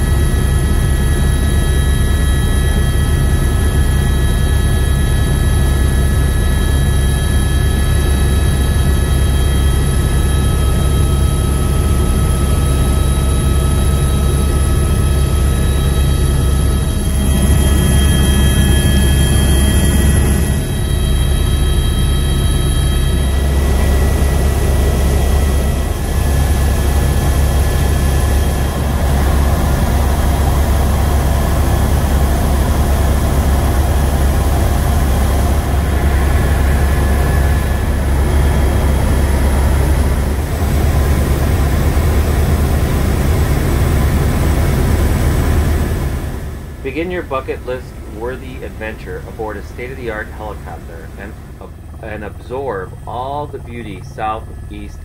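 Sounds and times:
helicopter rotor and engine drone: 0.0 - 55.0
high whining tones: 4.1 - 44.1, 44.7 - 55.0.

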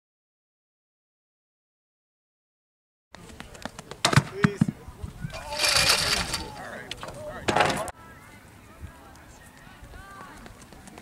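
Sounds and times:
voices: 3.2 - 11.0.

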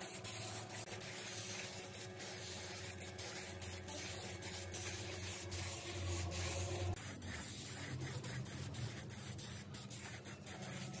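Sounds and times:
spray gun hissing: 0.0 - 11.0.

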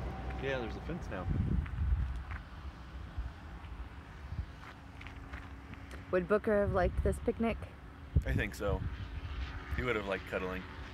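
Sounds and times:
wind rumble on microphone: 0.0 - 4.7, 6.0 - 10.9
faint footsteps on gravel: 1.5 - 2.6, 4.4 - 6.1.

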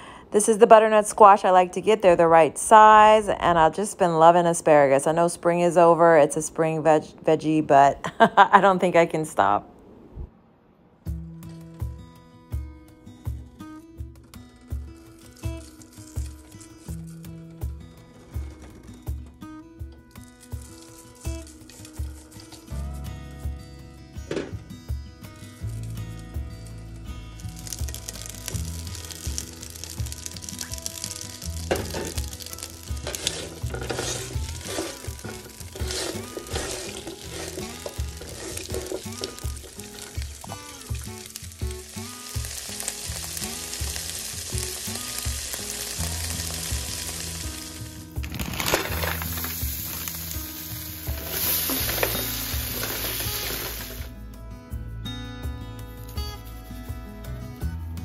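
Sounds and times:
background music: 11.0 - 58.0
vegetables sizzling in oil: 15.0 - 17.0, 20.1 - 22.8, 27.2 - 54.1.

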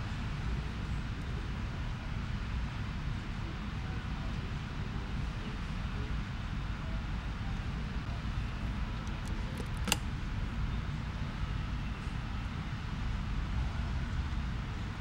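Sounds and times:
sharp click: 9.0 - 10.0.

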